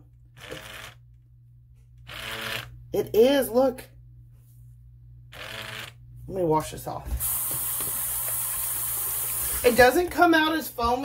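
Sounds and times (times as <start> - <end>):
soap dispenser pump whirring: 0.2 - 1.1, 2.0 - 2.8, 5.3 - 6.0, 7.2 - 10.3.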